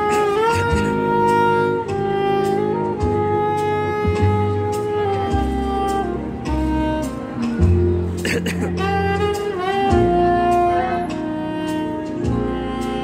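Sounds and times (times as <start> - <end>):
backing accompaniment with low bass: 0.0 - 13.0
saxophone melody: 0.0 - 13.0.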